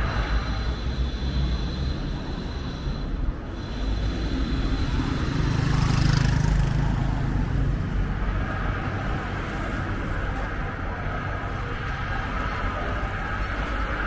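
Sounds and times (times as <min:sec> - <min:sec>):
car driving past: 0:00.0 - 0:14.0
low traffic rumble: 0:00.0 - 0:14.0.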